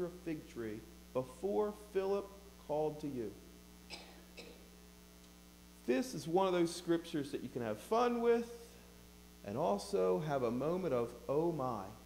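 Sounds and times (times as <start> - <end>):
man talking: 0.0 - 3.4, 5.8 - 8.7, 9.4 - 12.0
electrical mains hum: 0.0 - 12.0.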